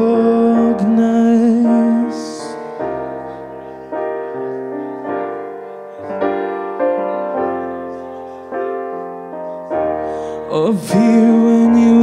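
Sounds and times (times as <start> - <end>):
piano chords ringing: 0.0 - 12.0.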